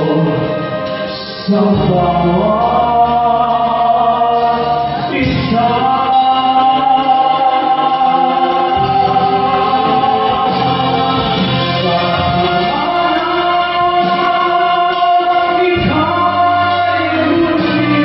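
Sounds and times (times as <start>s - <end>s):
concert band playing: 0.0s - 18.0s
man singing a ballad: 0.0s - 18.0s.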